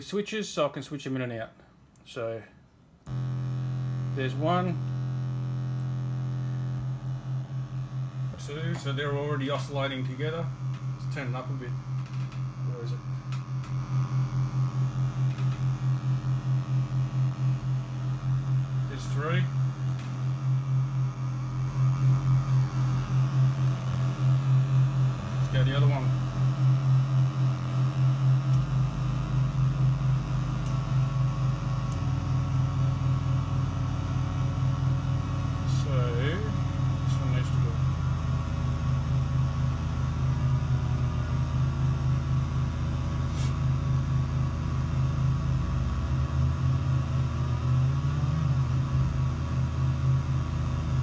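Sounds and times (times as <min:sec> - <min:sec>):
low synth drone: 0:03.1 - 0:51.0.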